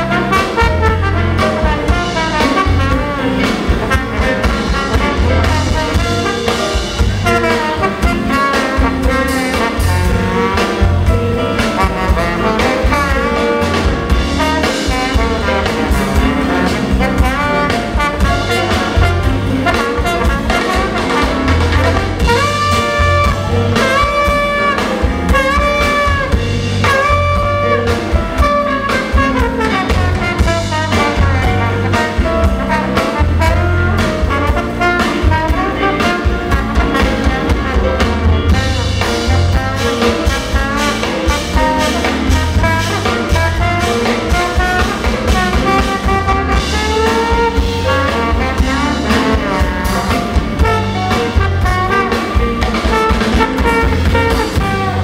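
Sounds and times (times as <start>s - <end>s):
jazz blues band playing: 0.0s - 55.0s
trombone solo: 0.0s - 55.0s.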